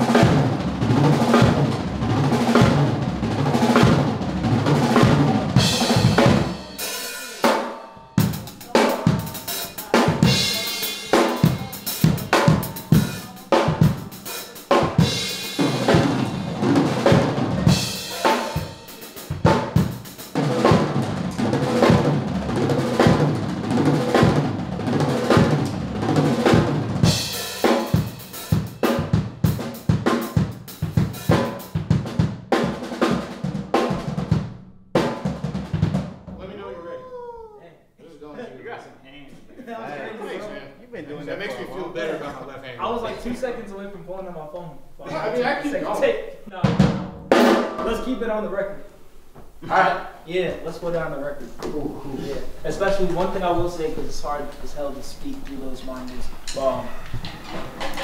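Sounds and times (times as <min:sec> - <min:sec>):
drum kit playing: 0:00.0 - 0:37.2, 0:42.8 - 0:58.0
held instrument notes: 0:03.4 - 0:22.9.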